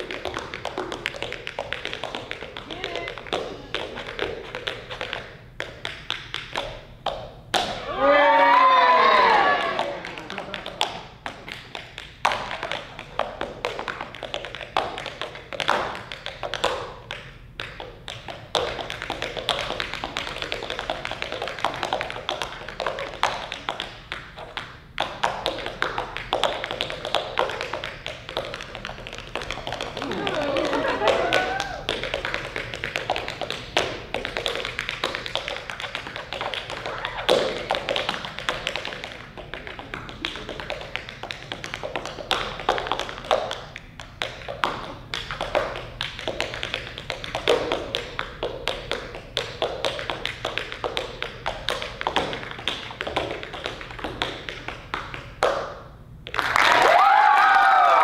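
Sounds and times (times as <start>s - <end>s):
tap shoes on stage floor: 0.0s - 58.0s.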